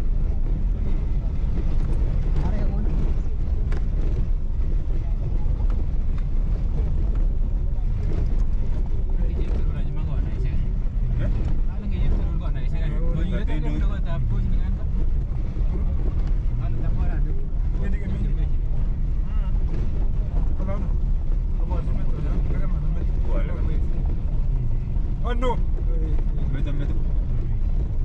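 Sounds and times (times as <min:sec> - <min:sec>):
car engine rumble: 0:00.0 - 0:28.0.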